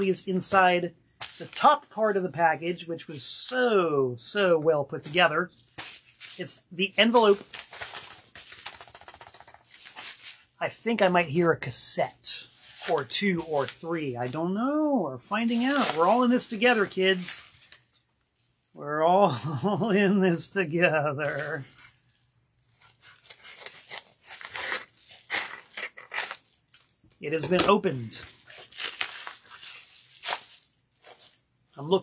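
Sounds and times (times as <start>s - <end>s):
paper envelope crinkling: 5.1s - 10.5s, 15.4s - 18.6s, 21.2s - 27.0s, 27.9s - 31.4s.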